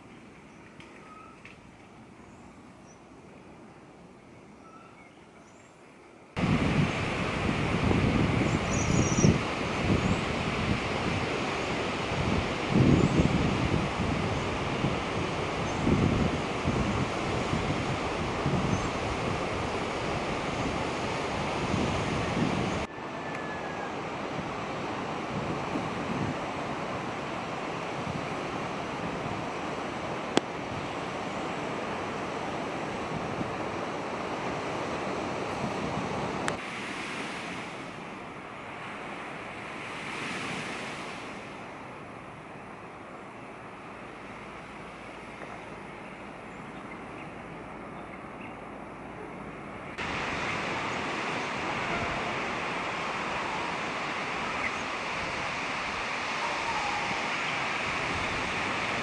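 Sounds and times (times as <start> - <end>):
wind gusting against microphone: 6.4 - 59.0.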